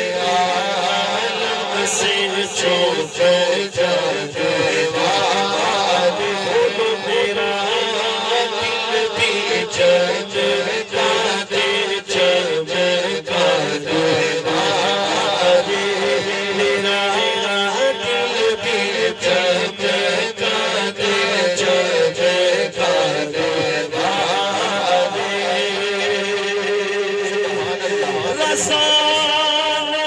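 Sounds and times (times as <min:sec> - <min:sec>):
man singing into a microphone: 0:00.0 - 0:30.0.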